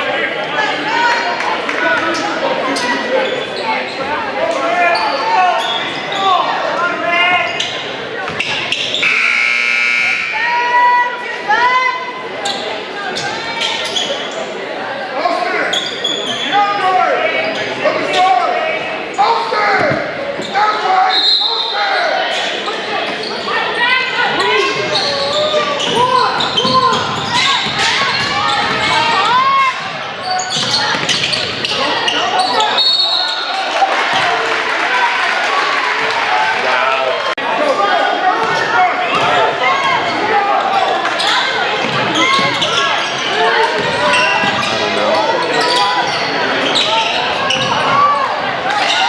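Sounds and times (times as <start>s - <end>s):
people shouting and talking: 0.0s - 49.0s
scoreboard horn: 9.0s - 10.4s
basketball bouncing on court: 29.8s - 31.7s, 41.8s - 42.7s, 43.7s - 44.7s.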